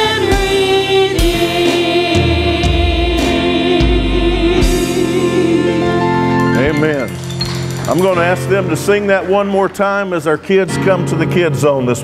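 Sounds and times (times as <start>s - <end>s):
instruments holding sustained chord: 0.0s - 7.2s.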